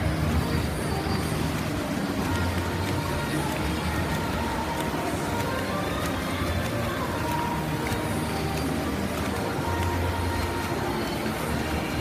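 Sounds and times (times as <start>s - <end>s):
spectators in the stands: 0.0s - 12.0s
swimmers splashing: 0.0s - 12.0s.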